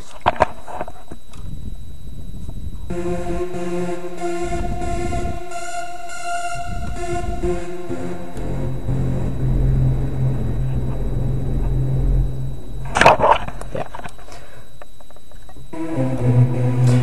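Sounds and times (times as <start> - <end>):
synth saw lead notes: 2.9 - 13.0, 15.7 - 17.0
noisy burst: 2.9 - 17.0.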